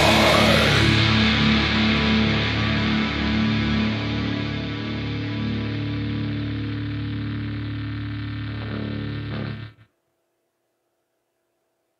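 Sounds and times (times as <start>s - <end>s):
distorted electric guitar chord: 0.0s - 9.9s.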